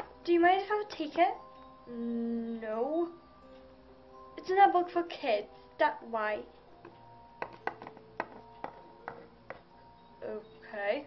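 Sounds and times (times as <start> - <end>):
quiet background music: 0.0 - 11.0
plastic toys clicking on wooden desk: 7.4 - 9.6.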